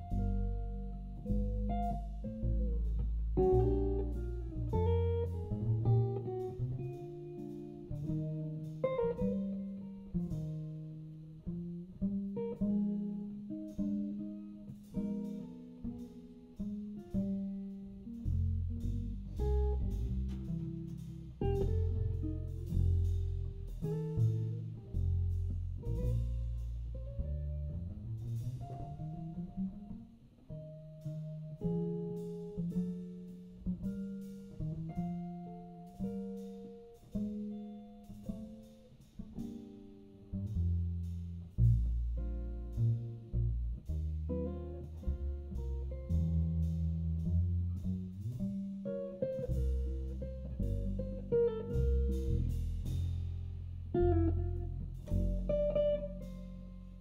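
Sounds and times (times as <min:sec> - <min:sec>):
jazz guitar playing: 0:00.0 - 0:57.0
plucked double bass: 0:00.0 - 0:57.0
drum kit and cymbals: 0:12.4 - 0:27.4, 0:31.0 - 0:43.0, 0:43.9 - 0:57.0.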